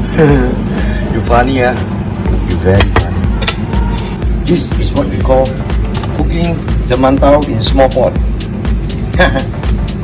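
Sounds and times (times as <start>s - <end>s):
steady low rumble: 0.0s - 10.0s
man speaking: 4.4s - 8.2s.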